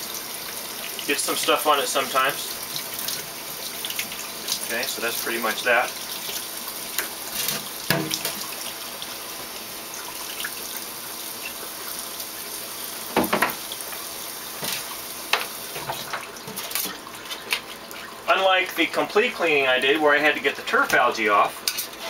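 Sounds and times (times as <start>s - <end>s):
tap water running into sink: 0.0s - 18.2s.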